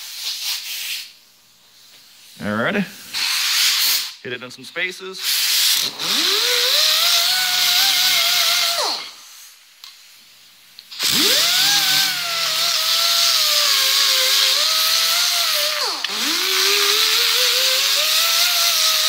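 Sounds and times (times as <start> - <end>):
electric grinder grinding metal: 5.9 - 9.0, 11.0 - 19.0.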